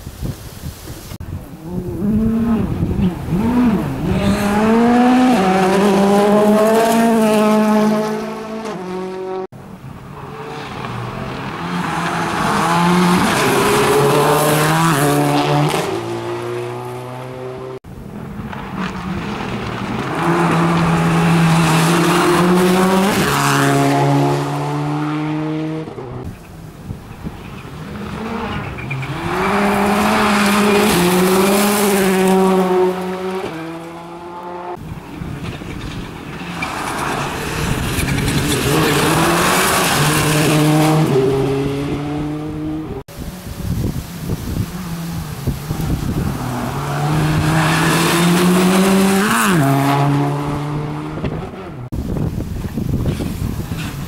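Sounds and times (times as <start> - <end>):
rally car engines revving past: 1.5 - 26.5, 27.2 - 51.9.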